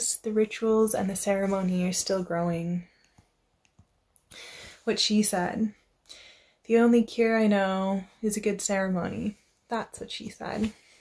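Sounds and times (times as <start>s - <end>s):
woman breathing in: 4.3s - 4.9s, 6.1s - 6.6s.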